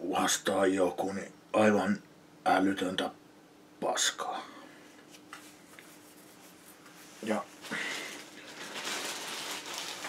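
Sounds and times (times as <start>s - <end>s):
faint steady hum: 0.0s - 10.0s
soft rustles: 5.0s - 10.0s.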